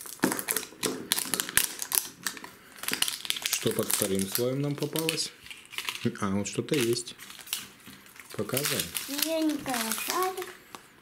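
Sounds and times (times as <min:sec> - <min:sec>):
plastic wrapper crinkling and tearing: 0:00.0 - 0:10.9.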